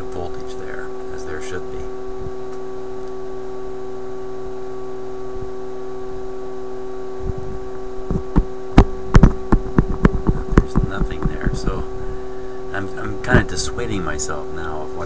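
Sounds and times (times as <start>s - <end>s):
radio speaker humming tones: 0.0s - 15.0s
irregular knocks and clicks: 8.1s - 11.7s.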